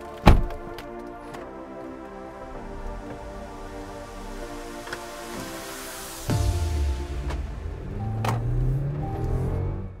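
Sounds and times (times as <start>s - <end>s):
background music with heavy bass: 0.0s - 10.0s.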